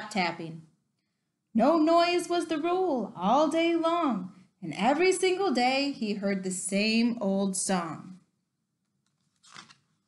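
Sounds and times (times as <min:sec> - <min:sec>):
paper page turning: 0:09.0 - 0:10.0.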